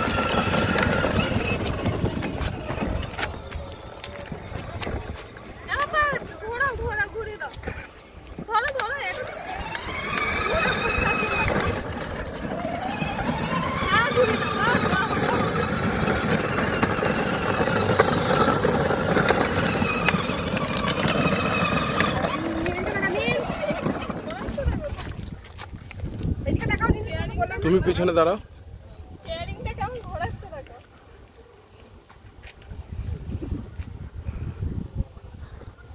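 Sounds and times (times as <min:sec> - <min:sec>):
electric toy car motor whine: 0:00.0 - 0:05.2, 0:09.1 - 0:24.5.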